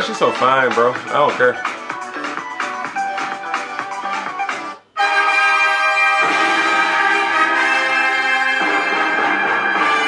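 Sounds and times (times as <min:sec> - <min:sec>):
brass playing held chords: 0:05.0 - 0:10.0.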